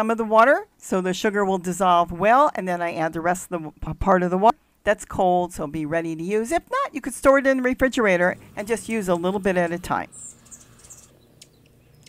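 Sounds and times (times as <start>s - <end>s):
high-pitched bird chirps: 10.1s - 12.0s.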